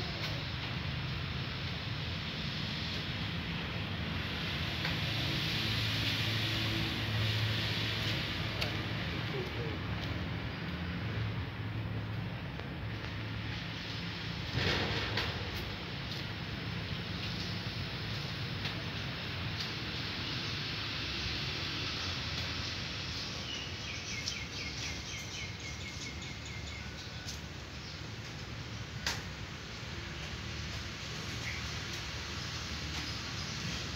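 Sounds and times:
faint voices: 8.6 - 10.2.

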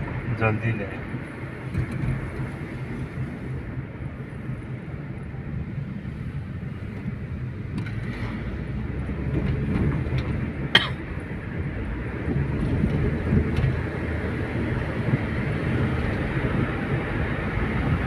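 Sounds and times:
car engine and tyre rumble: 0.0 - 18.0.

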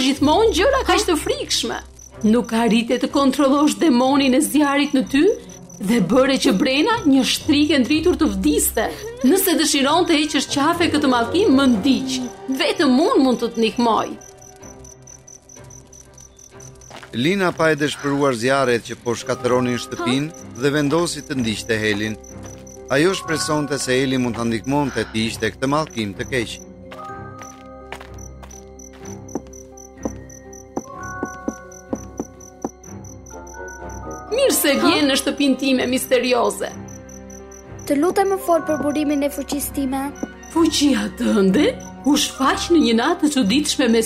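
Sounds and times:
crickets chirping: 0.0 - 44.0
soft background music: 0.0 - 44.0.

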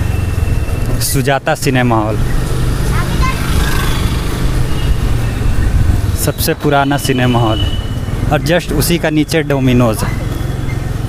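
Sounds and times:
street traffic rumble: 0.0 - 11.0.

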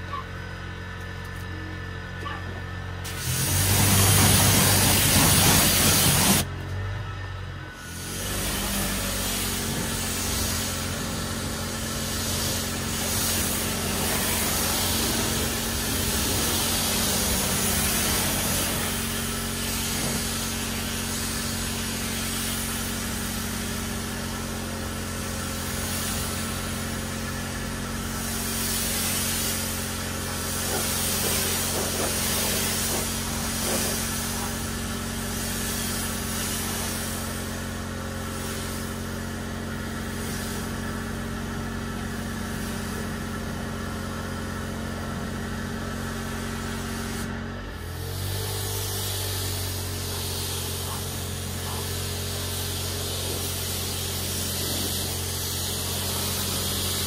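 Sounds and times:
pressure washer pump humming: 0.0 - 6.6, 7.7 - 57.0
water spray hissing: 3.1 - 6.4, 8.0 - 39.0, 48.0 - 57.0.

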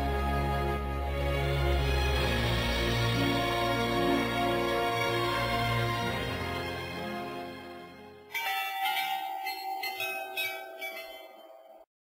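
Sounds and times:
background music: 0.0 - 11.9
peal of bells: 8.3 - 11.9.

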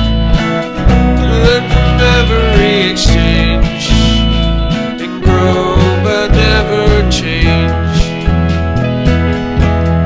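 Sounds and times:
folk band instrumental: 0.0 - 10.0.

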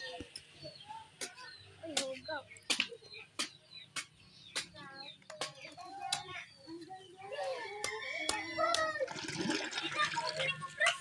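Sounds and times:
water pouring into plastic pitcher: 9.0 - 10.6.

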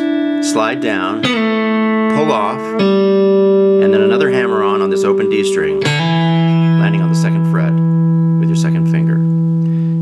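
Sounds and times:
electric guitar sustained note: 0.0 - 10.0.

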